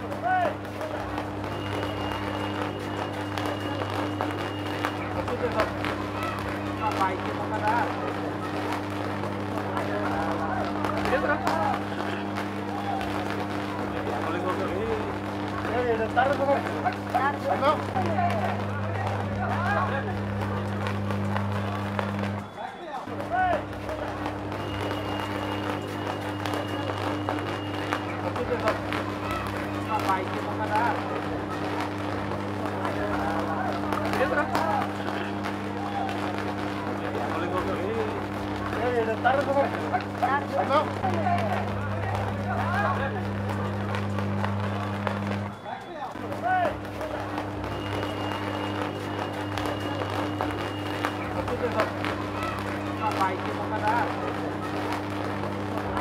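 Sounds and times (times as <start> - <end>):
crowd voices: 0.0 - 56.0
people talking: 0.0 - 56.0
power line arcing crackles: 0.0 - 56.0
electrical buzz: 0.6 - 22.5, 23.1 - 45.6, 46.2 - 56.0.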